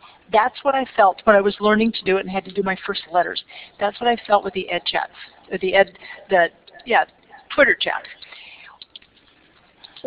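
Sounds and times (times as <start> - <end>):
small clicks: 8.2 - 10.0.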